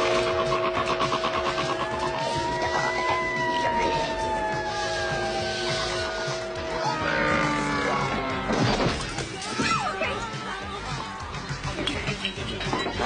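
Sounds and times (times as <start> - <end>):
high sliding tone: 0.0 - 8.5.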